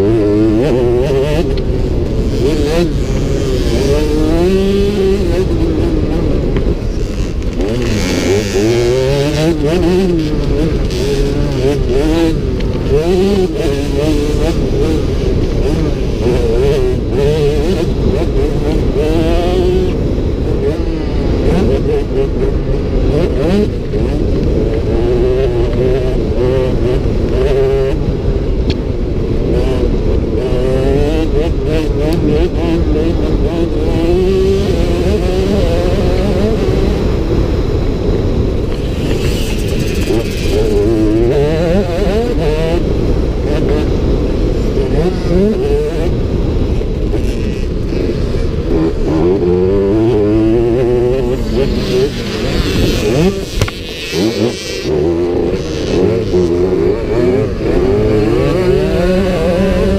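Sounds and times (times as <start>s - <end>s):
low rumble of wind: 0.0s - 59.9s
motorcycle engine revving: 0.0s - 59.9s.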